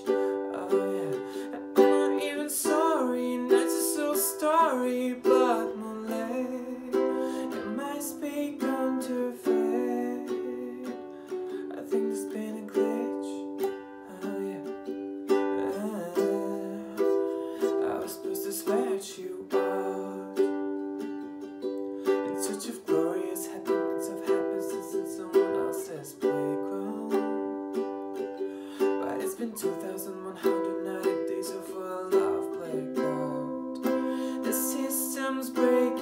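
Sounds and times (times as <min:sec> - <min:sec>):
ukulele strummed in chords: 0:00.0 - 0:36.0.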